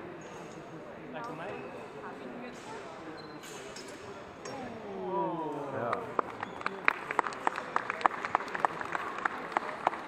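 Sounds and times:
onlookers chatter in echoing hall: 0.0 - 10.0.

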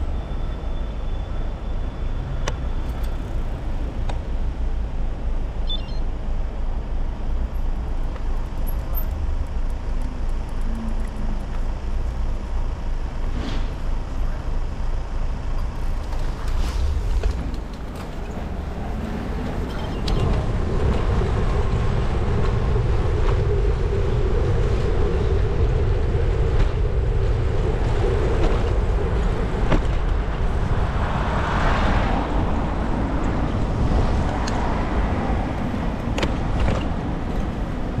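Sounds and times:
city traffic: 0.0 - 38.0
tyres rumbling on road: 0.0 - 38.0
wind buffeting microphone: 16.5 - 38.0.

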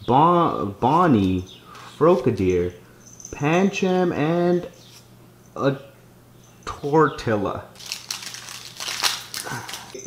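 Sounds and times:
foil wrapper crinkling: 7.8 - 10.0.

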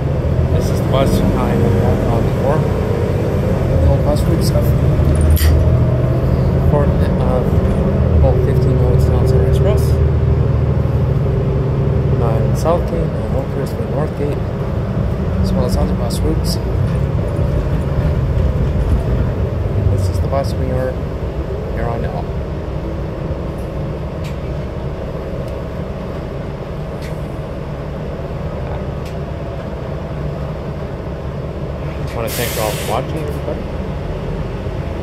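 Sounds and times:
bus engine and road rumble: 0.0 - 35.0.

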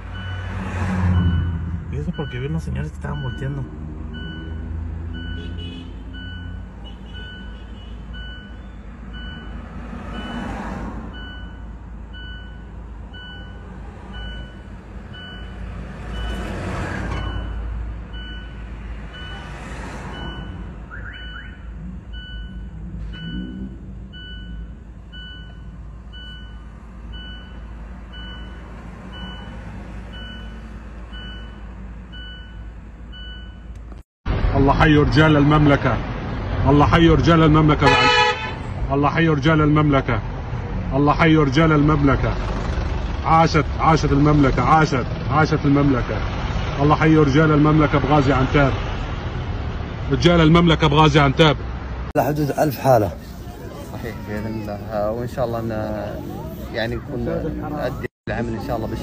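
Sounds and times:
low traffic rumble: 0.0 - 59.0
vehicles passing: 0.0 - 59.0
high electronic beep: 1.2 - 5.5, 20.2 - 26.6.

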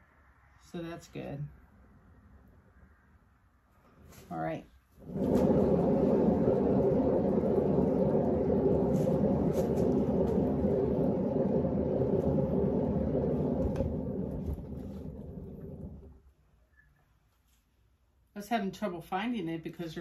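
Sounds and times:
spinner rumbling: 5.0 - 16.2.

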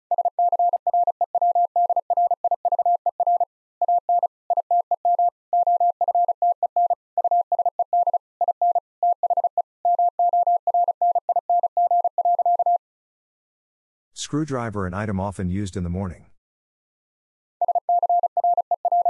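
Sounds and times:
morse code beeps: 0.1 - 12.8, 17.6 - 19.0.

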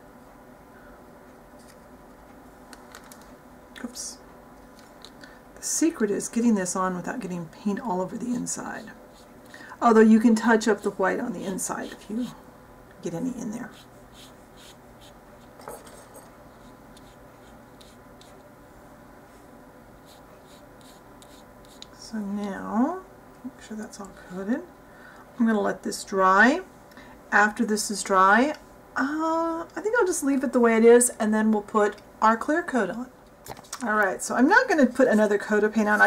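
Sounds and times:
scratchy brush strokes on paper: 13.6 - 15.6, 16.5 - 18.4, 20.0 - 21.9
paintbrush ticking on paper: 20.0 - 22.0.

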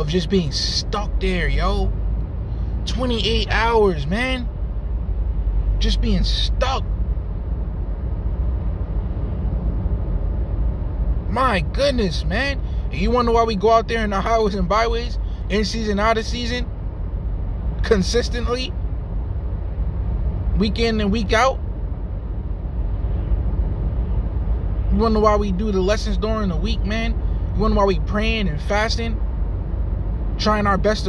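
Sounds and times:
low rumble: 0.0 - 31.0.

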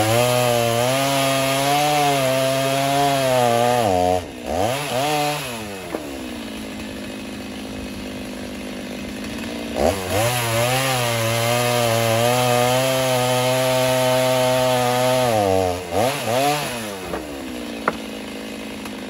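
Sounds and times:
chainsaw cutting wood: 0.0 - 19.0.

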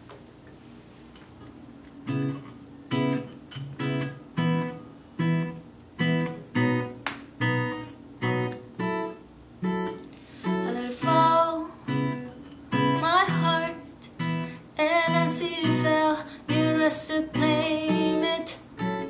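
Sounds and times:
acoustic guitar strummed: 2.0 - 19.0.

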